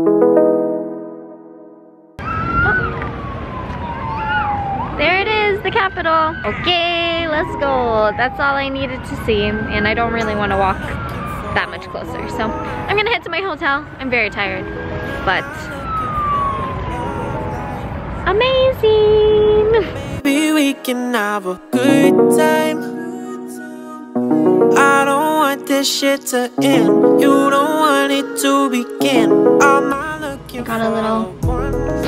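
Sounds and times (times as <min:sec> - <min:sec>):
emergency siren wailing: 0:02.2 - 0:19.7, 0:21.8 - 0:30.3
city street noise: 0:02.2 - 0:20.3.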